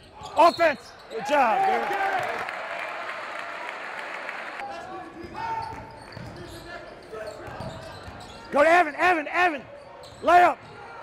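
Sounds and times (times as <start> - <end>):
crowd noise in gym: 0.0 - 11.0.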